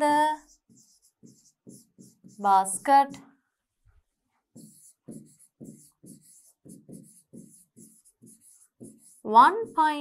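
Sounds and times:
pen scratching on writing board: 0:00.3 - 0:02.9, 0:04.5 - 0:10.0.

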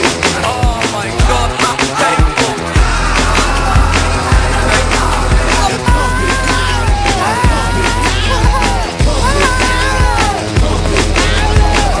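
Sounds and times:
music with heavy drum beat: 0:00.0 - 0:12.0.

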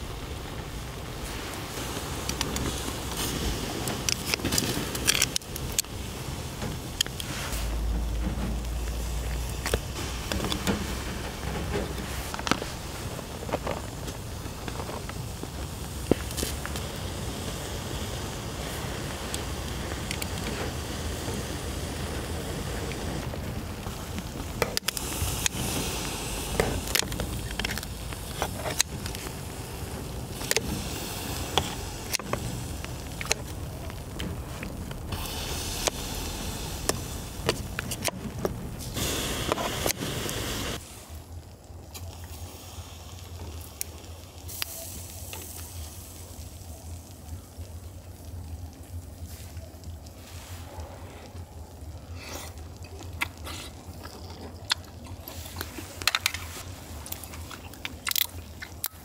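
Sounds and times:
shellfish sizzling on a grill: 0:00.0 - 0:59.0.

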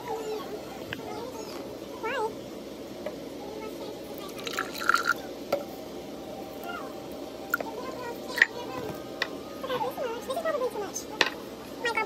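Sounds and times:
faint voices: 0:00.0 - 0:12.0
liquid pouring into glass: 0:04.3 - 0:05.2.

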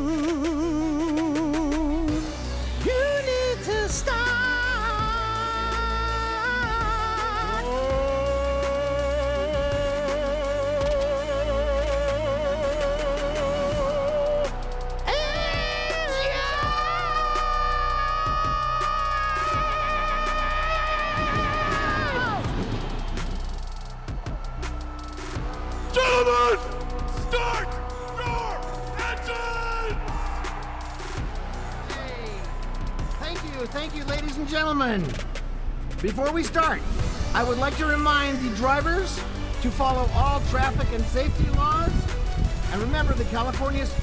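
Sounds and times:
steady beat: 0:11.8 - 0:40.2.

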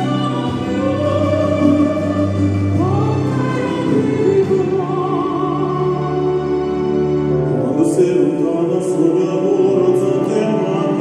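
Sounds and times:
instrumental accompaniment: 0:00.0 - 0:11.0
woman and man singing duet: 0:00.0 - 0:11.0.

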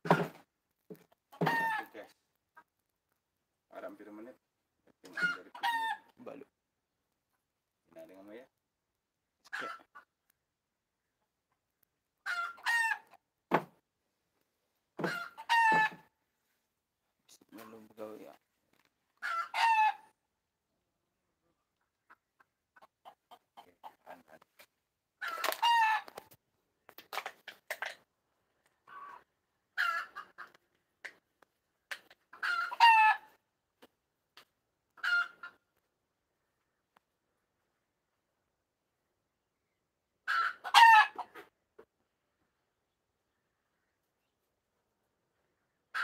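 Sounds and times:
chicken calls: 0:01.3 - 0:02.7, 0:05.0 - 0:06.2, 0:09.4 - 0:10.2, 0:12.2 - 0:13.2, 0:15.0 - 0:16.1, 0:19.2 - 0:20.2, 0:25.2 - 0:26.3, 0:28.8 - 0:31.2, 0:32.1 - 0:33.4, 0:35.0 - 0:35.7, 0:40.2 - 0:41.5.

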